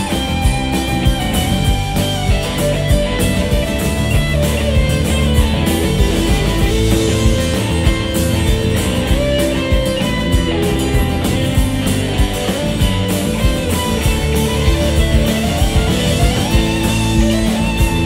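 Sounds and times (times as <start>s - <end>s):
electric guitar lead line: 0.0s - 18.0s
steady drums: 0.0s - 18.0s.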